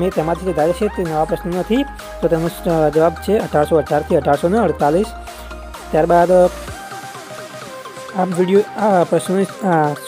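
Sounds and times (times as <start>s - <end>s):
person talking: 0.0s - 5.2s, 5.8s - 6.8s, 8.1s - 10.0s
background music with low bass: 0.0s - 10.0s.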